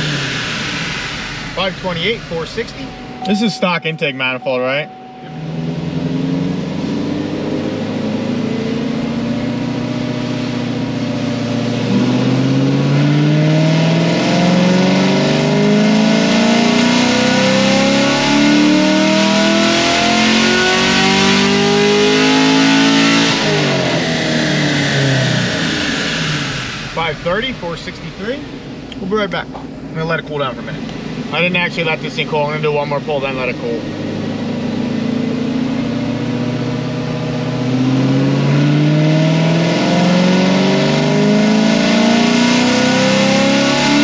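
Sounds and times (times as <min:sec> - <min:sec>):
car engine revving on dyno: 0:00.0 - 0:29.4, 0:30.6 - 0:44.0.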